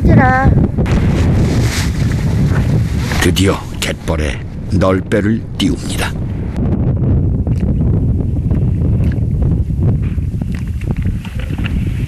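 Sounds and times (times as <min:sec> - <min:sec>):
woman speaking: 0:00.0 - 0:00.6
wind buffeting microphone: 0:00.0 - 0:12.0.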